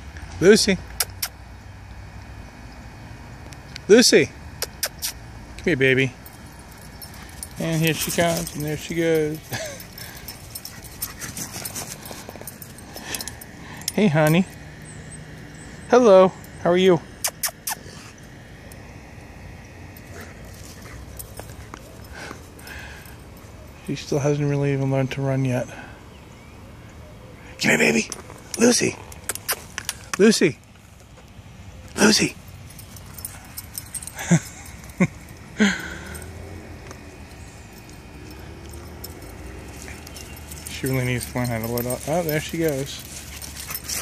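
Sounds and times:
low open air hum: 0:00.0 - 0:44.0
puppy sniffing grass: 0:06.4 - 0:13.9, 0:36.2 - 0:44.0.

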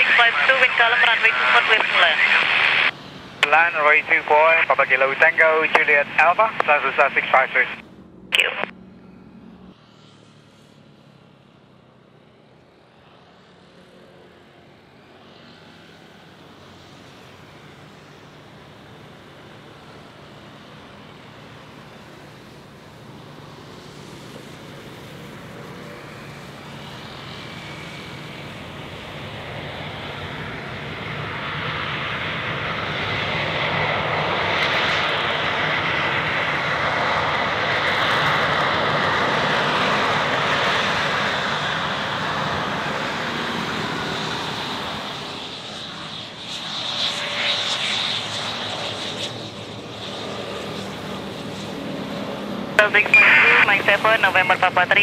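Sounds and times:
jet engines rolling out on runway: 0:00.0 - 0:55.0.

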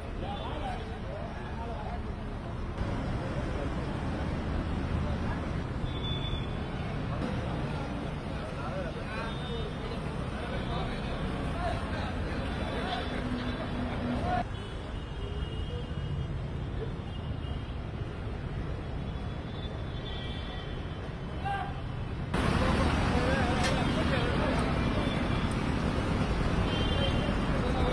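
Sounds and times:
low traffic rumble: 0:00.0 - 0:14.5, 0:21.0 - 0:27.9.

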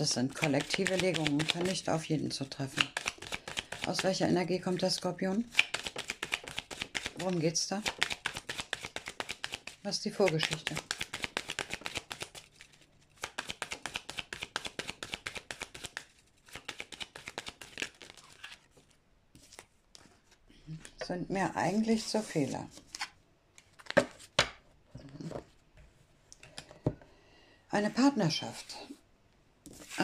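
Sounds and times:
cards being shuffled: 0:00.4 - 0:01.9, 0:02.5 - 0:04.1, 0:05.5 - 0:21.1, 0:21.8 - 0:25.3.

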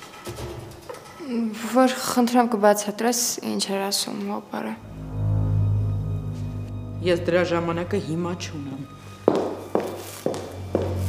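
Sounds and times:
hard-soled footsteps on hard floor: 0:09.1 - 0:11.0.

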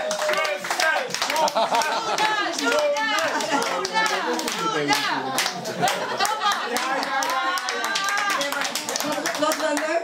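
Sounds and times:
crowd clapping: 0:00.0 - 0:10.0.

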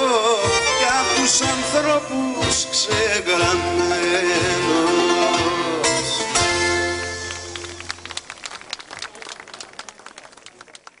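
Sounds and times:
band with bouzoukis: 0:00.0 - 0:09.1
audience clapping: 0:07.1 - 0:11.0.

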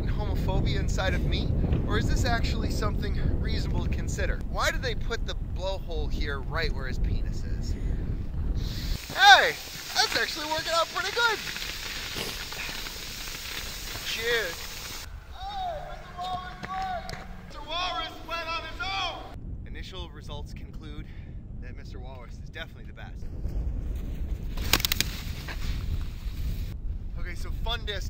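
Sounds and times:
wind rumble on microphone: 0:00.0 - 0:28.0
snow tube sliding over snow: 0:08.6 - 0:19.1.

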